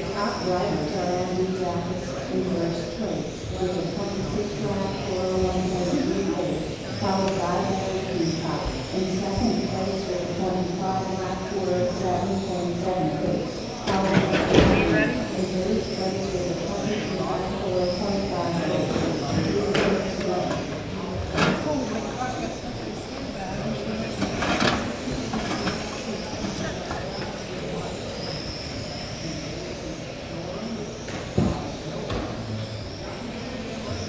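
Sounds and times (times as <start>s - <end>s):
voices: 0.0s - 34.0s.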